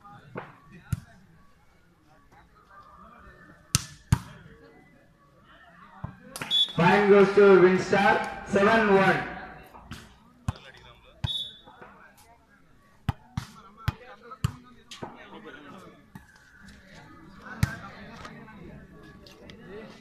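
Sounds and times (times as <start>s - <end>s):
voices murmuring: 0.0s - 20.0s.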